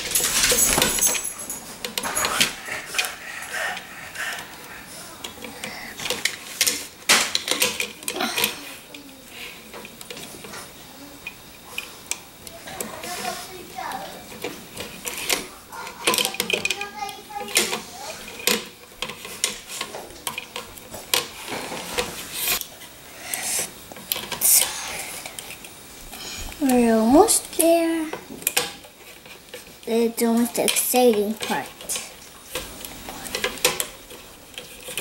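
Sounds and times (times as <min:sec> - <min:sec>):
plastic clicks and rattles: 0:05.2 - 0:09.1, 0:14.3 - 0:22.7
child's wordless voice: 0:12.5 - 0:14.3, 0:15.8 - 0:18.4, 0:26.6 - 0:28.2, 0:29.8 - 0:32.1.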